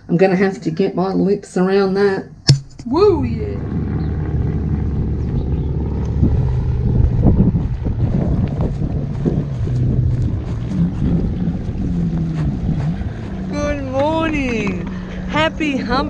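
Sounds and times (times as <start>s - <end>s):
wind buffeting microphone: 2.8s - 16.0s.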